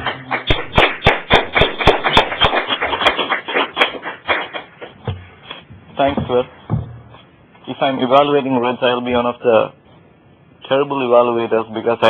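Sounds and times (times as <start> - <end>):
small audience applauding: 0.0 - 5.0.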